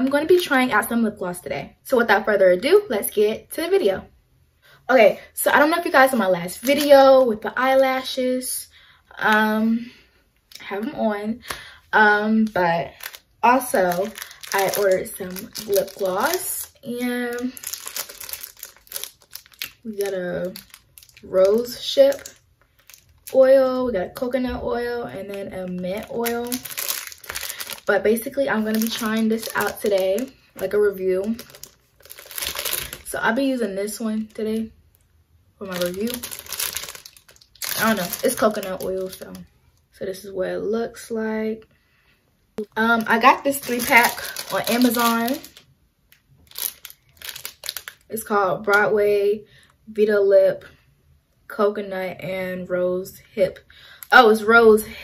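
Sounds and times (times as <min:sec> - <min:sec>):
plastic packaging crinkling: 0:06.0 - 0:07.0, 0:12.4 - 0:23.4, 0:25.2 - 0:33.3, 0:35.6 - 0:39.4, 0:42.6 - 0:48.9.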